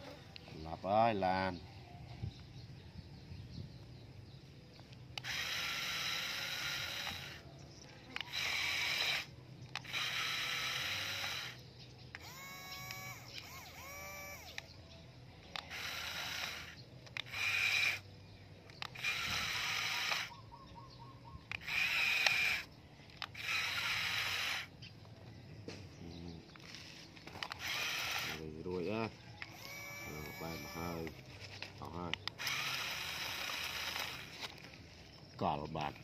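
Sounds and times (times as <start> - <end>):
small electric motor whirring: 4.2 - 25.1, 26.2 - 36.0.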